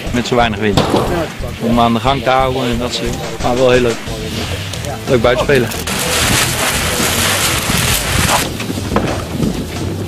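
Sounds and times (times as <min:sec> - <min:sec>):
flag flapping in wind: 0:05.9 - 0:10.0.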